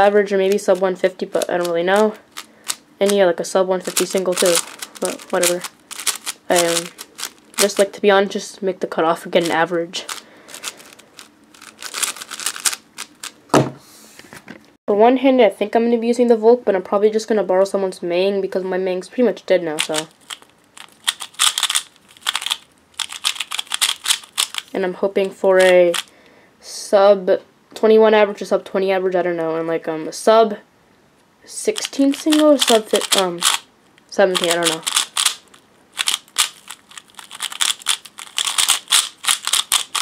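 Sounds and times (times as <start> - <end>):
puzzle cube plastic clicks: 0.4 - 3.2, 3.8 - 7.8, 9.4 - 13.4, 19.8 - 24.8, 25.6 - 26.1, 31.7 - 33.6, 34.3 - 40.0.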